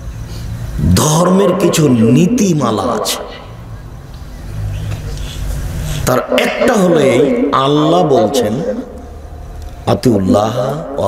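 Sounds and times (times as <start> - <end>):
low rumble: 5.6 - 11.0.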